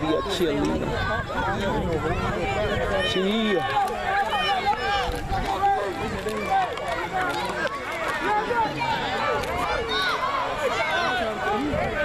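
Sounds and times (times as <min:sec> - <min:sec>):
overlapping spectator chatter: 0:00.0 - 0:12.0.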